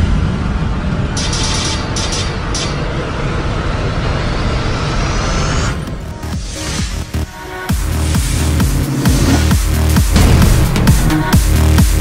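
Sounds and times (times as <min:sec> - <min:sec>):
rumbling whoosh: 0:00.0 - 0:02.1.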